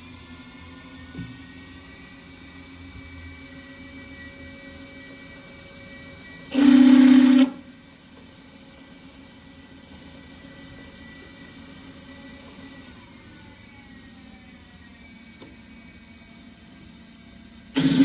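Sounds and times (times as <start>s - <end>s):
milling machine humming: 5.8s - 7.7s, 16.5s - 18.0s
drill cutting into steel: 6.5s - 7.6s, 17.8s - 18.0s
loud burst of noise: 6.5s - 7.6s, 17.8s - 18.0s.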